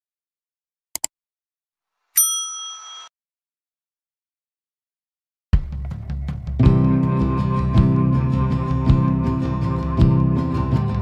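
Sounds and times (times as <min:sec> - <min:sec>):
notification bell ding: 0:02.2 - 0:03.1.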